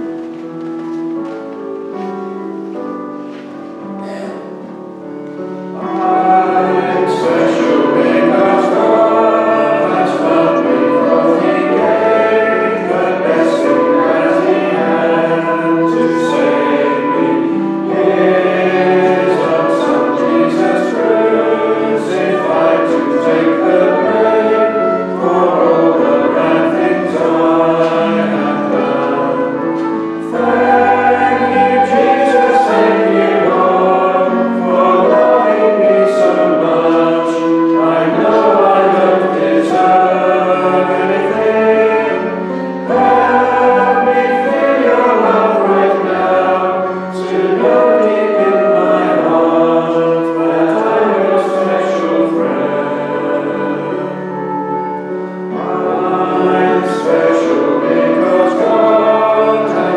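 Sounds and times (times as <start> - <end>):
congregation singing: 0.0 - 59.9
sustained keyboard accompaniment: 0.0 - 59.9.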